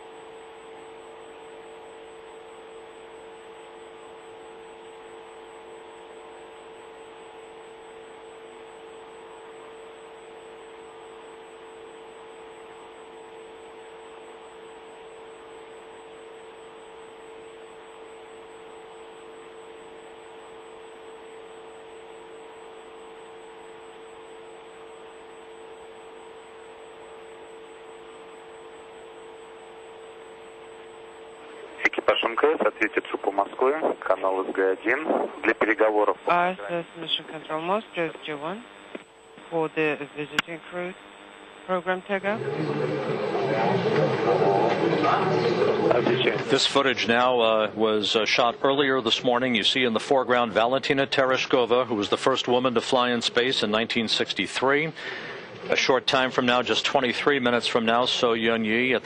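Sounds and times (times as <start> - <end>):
electrical hum: 0.0 - 59.0.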